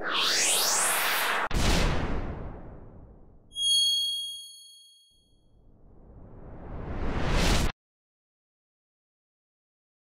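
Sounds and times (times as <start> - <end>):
whoosh: 0.0 - 3.0, 5.8 - 7.7
bright ringing ding: 3.5 - 5.2.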